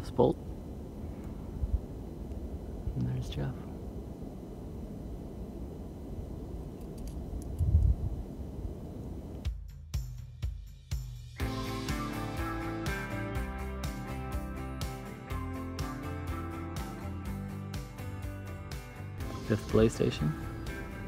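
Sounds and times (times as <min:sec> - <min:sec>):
wind buffeting microphone: 0:00.0 - 0:09.5.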